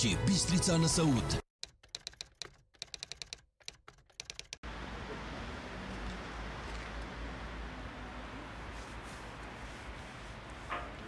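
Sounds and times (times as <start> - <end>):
keyboard typing clicks: 1.6 - 4.6.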